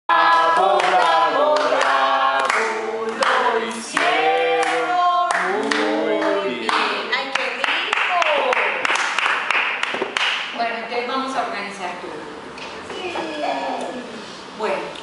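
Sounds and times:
women singing together: 0:00.1 - 0:07.2
hand claps: 0:00.4 - 0:10.5.

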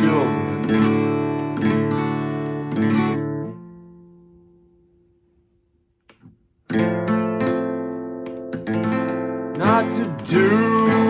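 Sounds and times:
man singing: 0:00.0 - 0:00.7, 0:09.6 - 0:11.0
acoustic guitar strummed: 0:00.0 - 0:04.8, 0:06.7 - 0:11.0.

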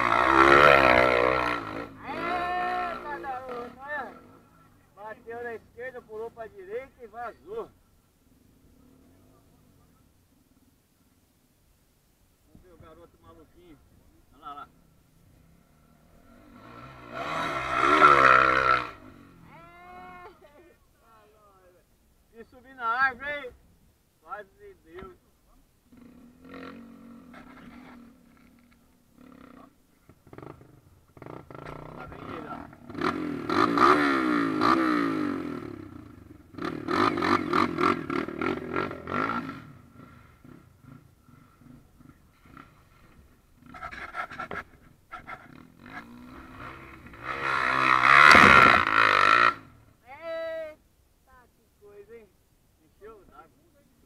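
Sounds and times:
dirt bike engine revving: 0:00.0 - 0:04.5, 0:15.3 - 0:19.7, 0:25.9 - 0:49.8.

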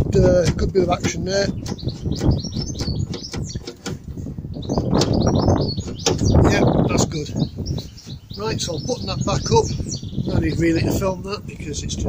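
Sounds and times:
small birds chirping: 0:00.0 - 0:12.0
wind rumble on microphone: 0:00.0 - 0:12.0.

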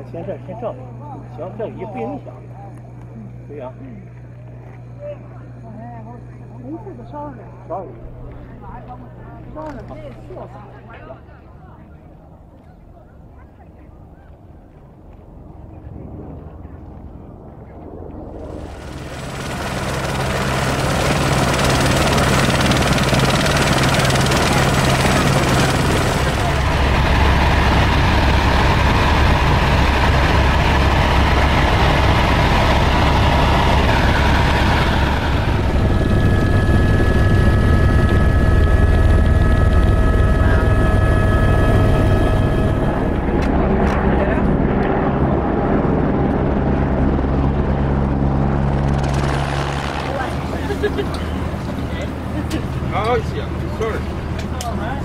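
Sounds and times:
helicopter engine and rotor: 0:00.0 - 0:12.4, 0:14.5 - 0:55.0.

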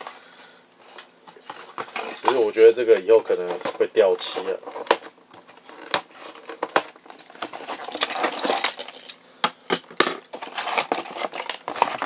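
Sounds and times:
rustling and crinkling: 0:00.0 - 0:09.2, 0:10.0 - 0:12.0.

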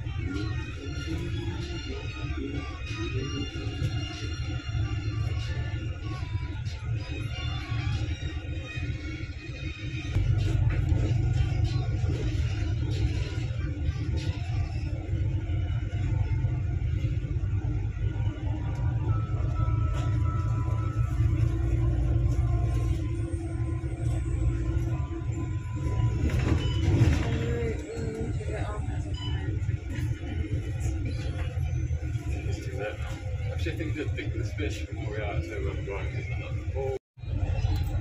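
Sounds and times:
bus engine and road rumble: 0:00.0 - 0:38.0
indistinct voices: 0:00.0 - 0:38.0.

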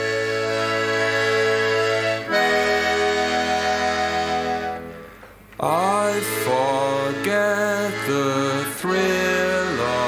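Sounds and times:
accordion chords: 0:00.0 - 0:10.0
man singing: 0:05.6 - 0:10.0.

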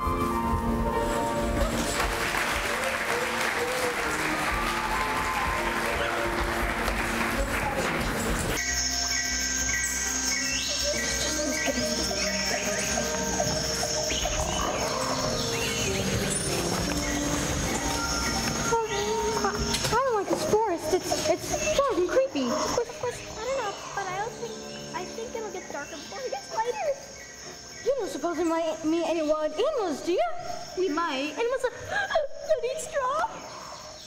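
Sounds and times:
audience applause: 0:01.2 - 0:08.6.

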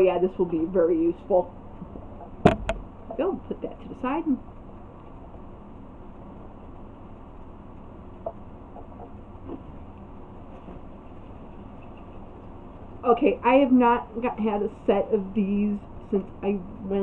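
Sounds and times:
steady low hiss: 0:00.0 - 0:17.0.

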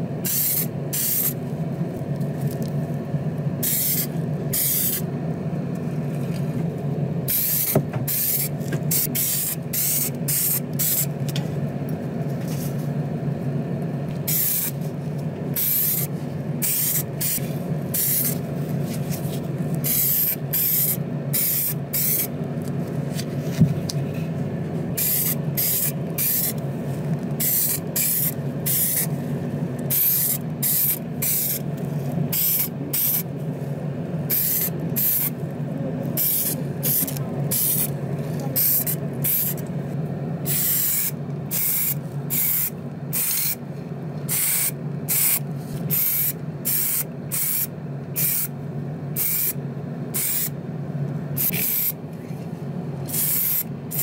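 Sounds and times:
steady low hum: 0:00.0 - 0:54.0
paint spraying in hissing bursts: 0:00.3 - 0:01.4, 0:03.6 - 0:05.0, 0:07.3 - 0:11.1, 0:14.3 - 0:14.8, 0:15.6 - 0:18.4, 0:19.8 - 0:22.3, 0:25.0 - 0:26.6, 0:27.4 - 0:29.1, 0:29.9 - 0:31.6, 0:32.3 - 0:33.2, 0:34.3 - 0:35.3, 0:40.5 - 0:43.6, 0:49.2 - 0:49.6, 0:50.2 - 0:50.5, 0:51.4 - 0:52.0, 0:53.1 - 0:54.0.

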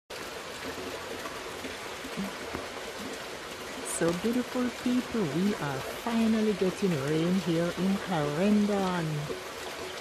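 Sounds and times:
steady rain falling: 0:00.1 - 0:10.0.

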